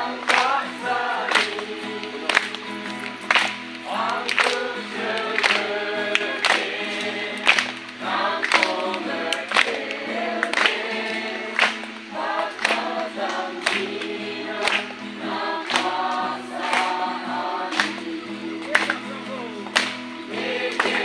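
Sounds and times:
group singing a hymn: 0.0 - 21.0.

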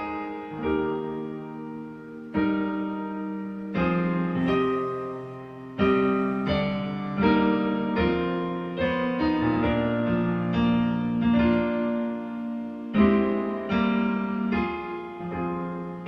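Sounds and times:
hymn on digital piano: 0.0 - 16.0.

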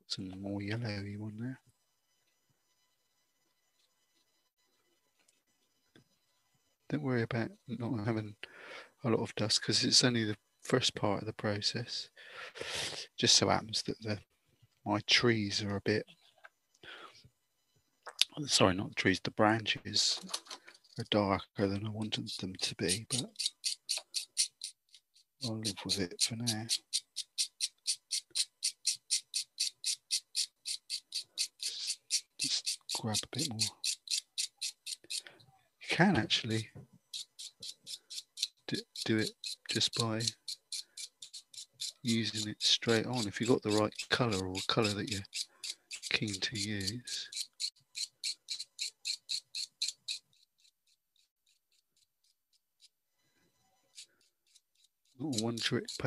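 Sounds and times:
blade scraping pastel stick: 21.6 - 35.3, 37.1 - 52.9, 53.9 - 56.0.

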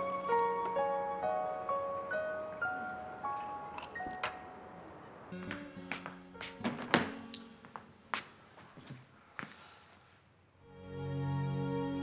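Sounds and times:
soft background music: 0.0 - 7.4.

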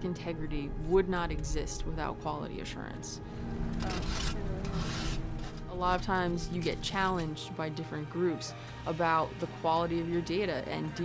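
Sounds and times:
metal spoon scraping steel pan: 3.8 - 5.6.

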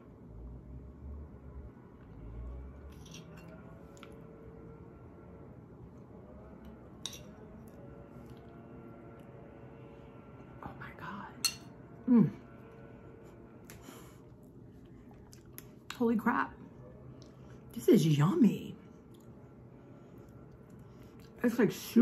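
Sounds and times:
chewing mouth sounds: 14.4 - 16.0.

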